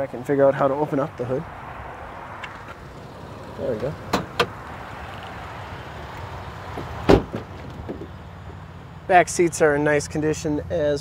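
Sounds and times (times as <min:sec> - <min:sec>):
truck door thump: 0:04.0 - 0:04.6, 0:06.7 - 0:08.2.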